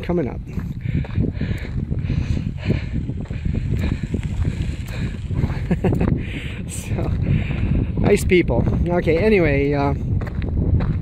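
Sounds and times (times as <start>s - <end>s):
wind buffeting microphone: 0.0s - 11.0s
footsteps on gravel: 0.4s - 6.2s, 6.8s - 11.0s.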